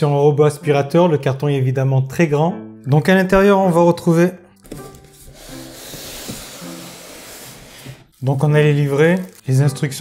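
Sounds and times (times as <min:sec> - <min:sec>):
soft background music: 0:00.0 - 0:10.0
cardboard rubbing and sliding: 0:04.7 - 0:09.5.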